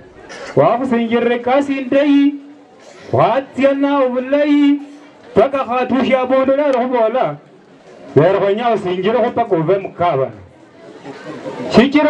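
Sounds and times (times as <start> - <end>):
faint background chatter: 0.0 - 0.8, 2.3 - 3.3, 4.6 - 5.6, 10.0 - 12.0.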